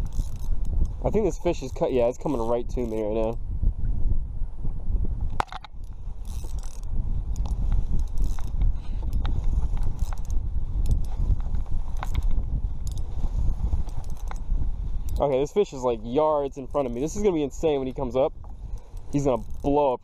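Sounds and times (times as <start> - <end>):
fishing reel cranking with clicks: 0.0 - 3.4, 5.8 - 11.2, 11.9 - 13.1, 13.8 - 14.4, 18.7 - 19.9
wind rumble on microphone: 0.0 - 20.0.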